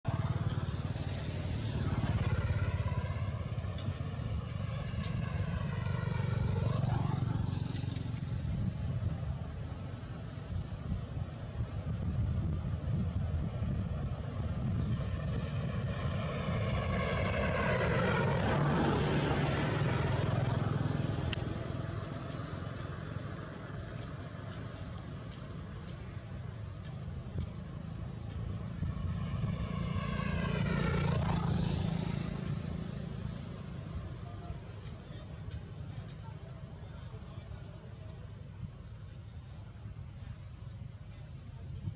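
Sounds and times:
low traffic rumble: 0.0s - 41.9s
vehicles passing by: 0.0s - 41.9s.

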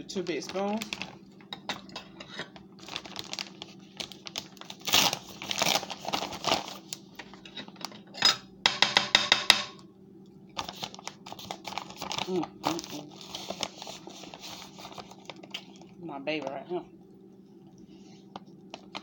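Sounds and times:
bag crinkling and rustling: 0.0s - 1.4s, 2.5s - 7.8s, 10.6s - 16.5s
faint steady hum: 0.0s - 19.0s.

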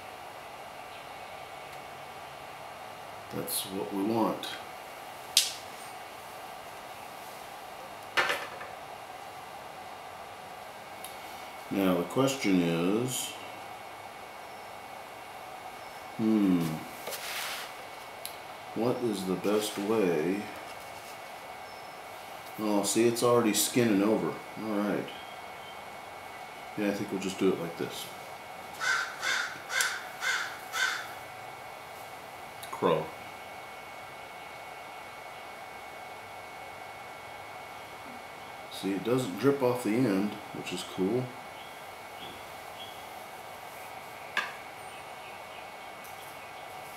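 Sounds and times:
faint room hiss: 0.0s - 46.9s
crow cawing: 28.8s - 31.2s.

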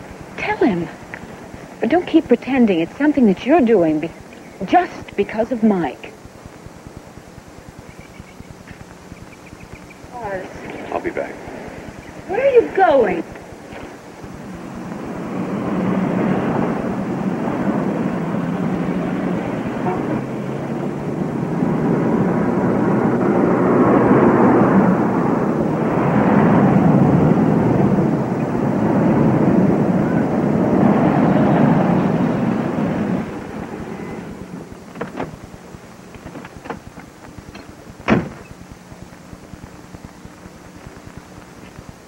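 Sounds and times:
vehicles passing: 10.2s - 35.5s.

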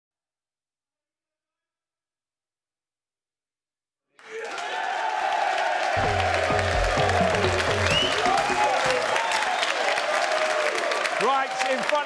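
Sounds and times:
audience applauding and cheering: 4.2s - 12.0s
bass-heavy music sting: 6.0s - 9.0s.

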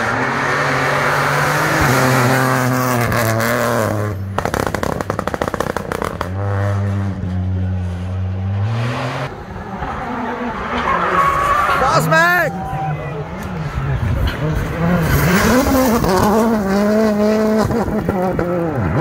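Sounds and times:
rally car engine revving: 0.0s - 12.0s, 13.2s - 19.0s.

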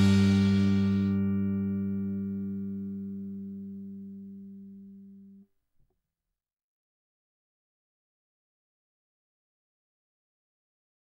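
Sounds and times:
bass string noise: 0.0s - 5.4s
electric bass guitar note: 0.0s - 5.4s.

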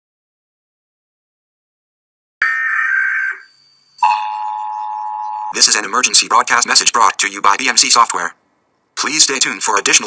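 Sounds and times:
harsh electronic alert tone: 3.0s - 5.8s.

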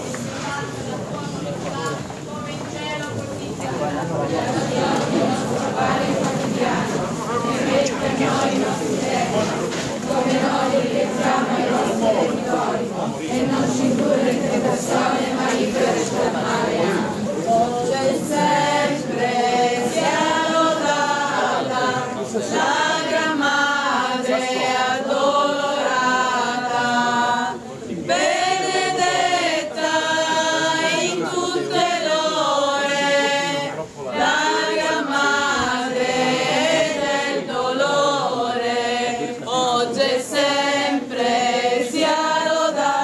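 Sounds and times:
crowd singing a hymn unaccompanied: 0.0s - 43.0s.

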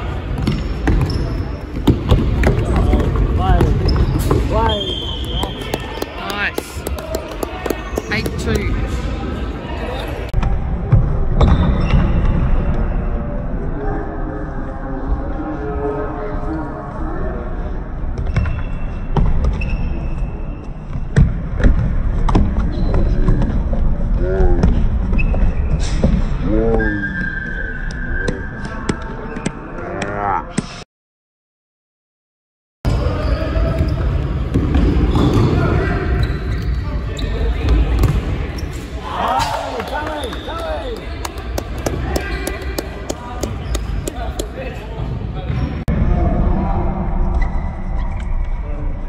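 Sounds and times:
shoes squeaking on boards: 0.4s - 1.9s, 3.8s - 6.1s, 42.0s - 44.6s
shoes squeaking on court: 0.4s - 8.8s, 18.2s - 21.1s, 32.9s - 44.8s.

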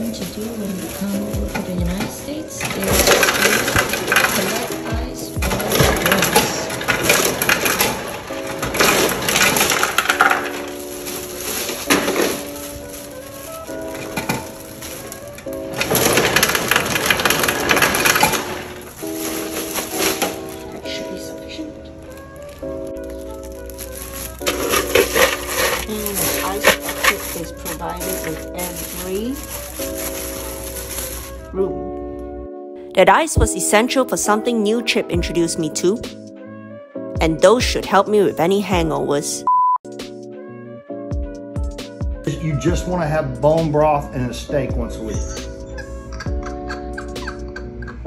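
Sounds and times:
ice cubes clattering into a bag: 0.0s - 31.5s
background music: 0.0s - 48.0s.

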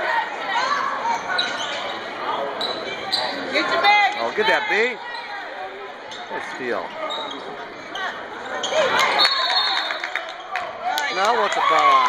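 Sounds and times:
shouts echoing in gym: 8.7s - 12.0s
referee's whistle: 9.2s - 10.1s.

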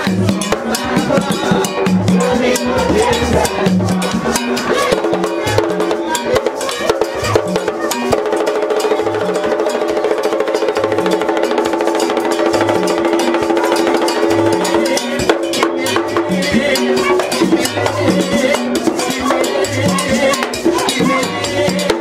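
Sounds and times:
hand drums beating fast rhythm: 0.0s - 22.0s.

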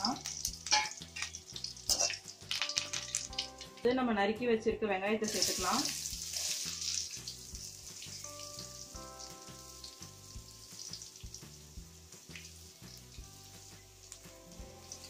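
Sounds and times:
onions frying in oil: 0.0s - 3.9s, 5.2s - 15.0s.

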